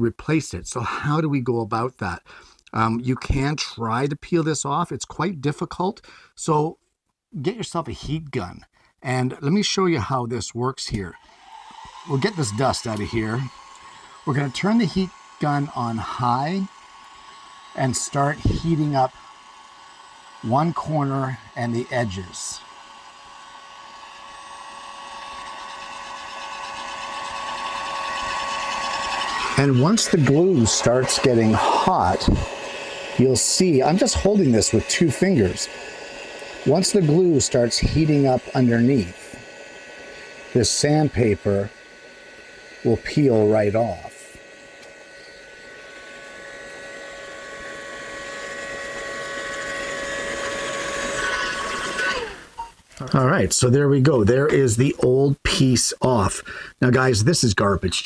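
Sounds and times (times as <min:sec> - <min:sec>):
faint motor whine: 0:10.9 - 0:57.0
heat gun blowing hiss: 0:11.1 - 0:52.8.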